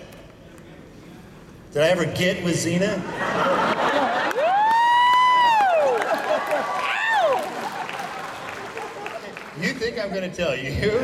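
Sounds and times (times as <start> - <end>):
person whooping: 4.4 - 7.5.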